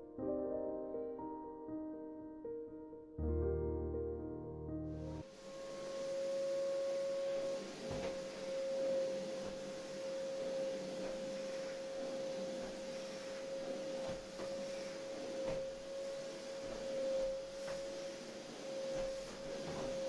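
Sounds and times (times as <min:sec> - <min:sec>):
vacuum cleaner whining: 0:05.1 - 0:20.0.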